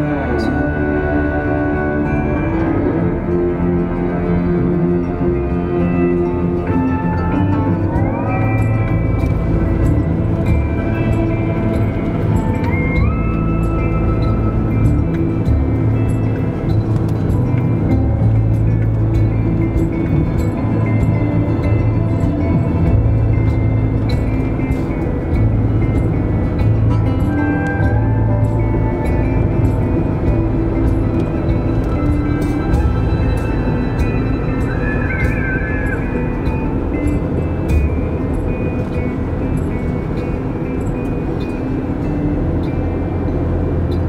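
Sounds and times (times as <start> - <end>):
music of sustained notes: 0.0 - 44.0.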